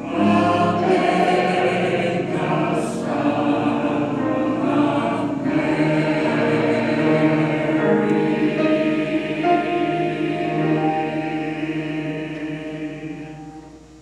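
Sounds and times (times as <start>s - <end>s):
mixed choir singing: 0.0s - 14.0s.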